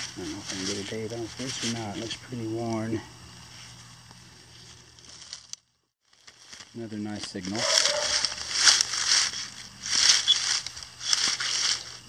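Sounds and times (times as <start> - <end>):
small clicks and crackles: 4.0 - 12.0.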